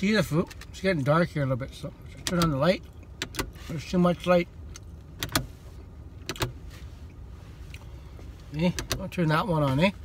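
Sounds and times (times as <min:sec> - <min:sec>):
low steady rumble in car: 0:00.0 - 0:10.0.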